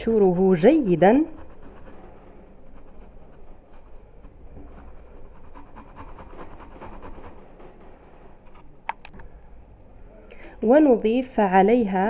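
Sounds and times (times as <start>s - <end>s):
fruit rasping on metal grater: 0.0s - 7.6s.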